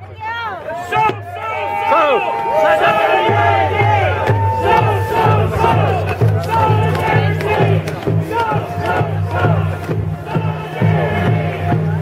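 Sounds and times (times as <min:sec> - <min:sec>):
group of voices chanting: 0:01.8 - 0:12.0
low drumbeat: 0:02.8 - 0:12.0.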